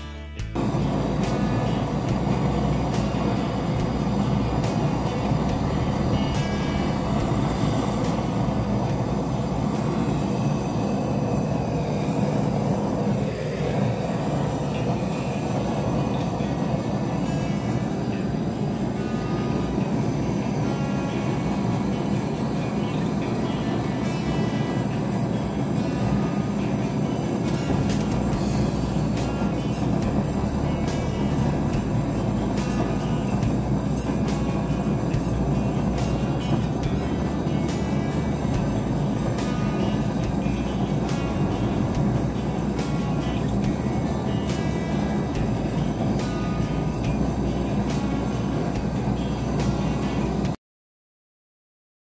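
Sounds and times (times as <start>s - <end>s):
music: 0.0s - 50.6s
gas torch flame burning: 0.6s - 50.6s.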